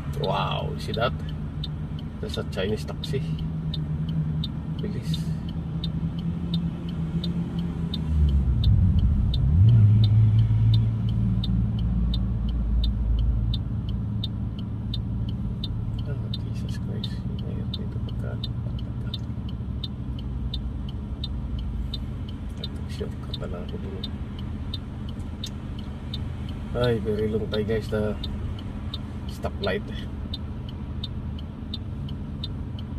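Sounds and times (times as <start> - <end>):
car engine idling: 0.0 - 32.9
light steady ticking: 0.0 - 32.9.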